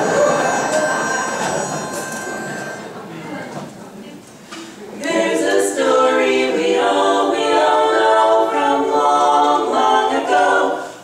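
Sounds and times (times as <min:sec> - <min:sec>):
audience laughing: 0:00.0 - 0:03.1
pitch pipe note: 0:00.0 - 0:03.6
women singing a cappella: 0:05.0 - 0:11.0.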